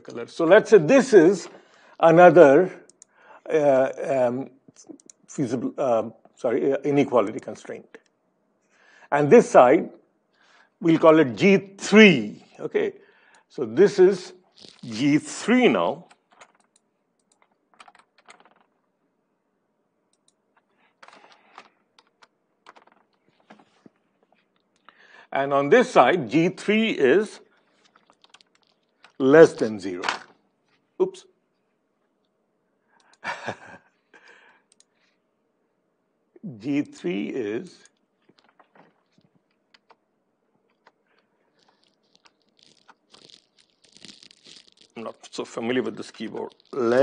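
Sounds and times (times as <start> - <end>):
computer keyboard clatter: 16.0 - 18.8, 21.0 - 23.6, 27.9 - 29.2, 38.2 - 40.0, 41.6 - 47.0
typing on computer keyboard: 16.1 - 18.7, 21.0 - 23.2, 27.9 - 29.2.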